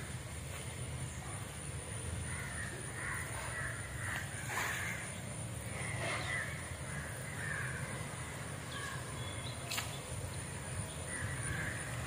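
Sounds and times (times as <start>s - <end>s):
crows cawing: 2.2s - 9.0s, 11.1s - 12.0s.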